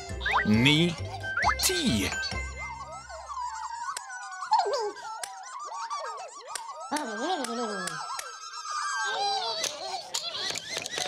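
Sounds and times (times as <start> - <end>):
squeaky cartoon voices chattering: 0.0 - 11.0.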